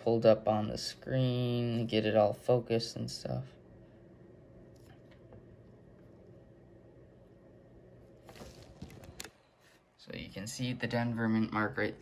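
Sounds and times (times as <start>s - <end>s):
faint room hum: 0.0s - 12.0s
handling rustles: 8.2s - 9.8s.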